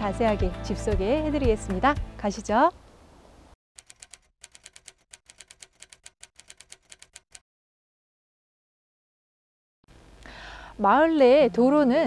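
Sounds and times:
keyboard key clicks: 3.8s - 7.4s.

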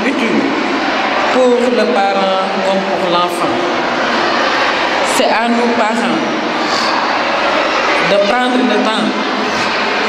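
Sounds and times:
loud steady rushing noise: 0.0s - 10.0s.

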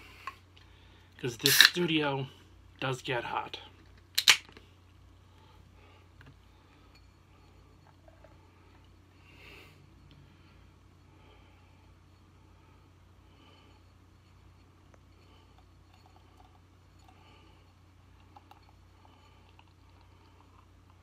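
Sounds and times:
steady low hum: 0.0s - 21.0s
can ring-pull cracking open: 1.4s - 1.8s, 4.2s - 4.6s.

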